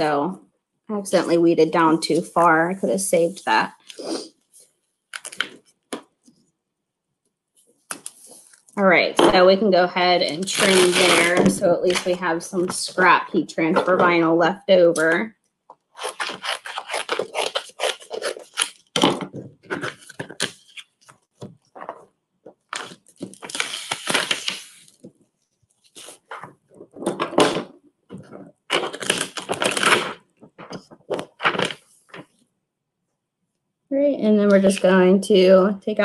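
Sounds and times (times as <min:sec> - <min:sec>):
tearing rushes: 0:15.9 - 0:21.2, 0:22.6 - 0:25.0, 0:25.8 - 0:31.9
scissors snipping vinyl: 0:16.0 - 0:19.2.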